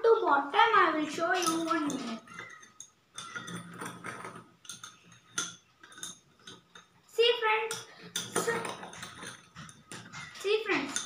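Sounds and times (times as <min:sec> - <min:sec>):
metal spoon clinking in steel bowl: 0:01.3 - 0:06.9, 0:07.7 - 0:11.0.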